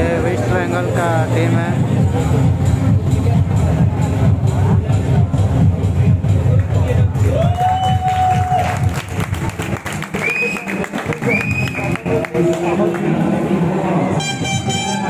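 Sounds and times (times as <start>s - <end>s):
crowd noise: 0.0s - 15.0s
stadium music with heavy beat: 0.0s - 15.0s
horn toots: 14.1s - 15.0s.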